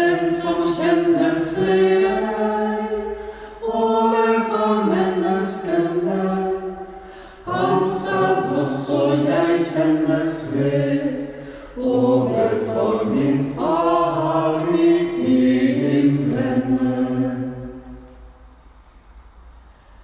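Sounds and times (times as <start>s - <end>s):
choir chanting: 0.0s - 18.3s.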